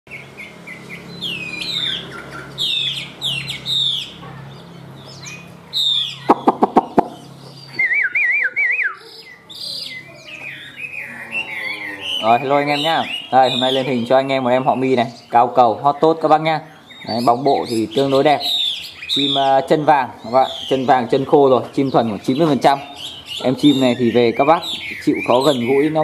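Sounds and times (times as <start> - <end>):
bird singing whistled phrases: 5.1 - 15.0, 16.7 - 21.0, 21.7 - 26.0.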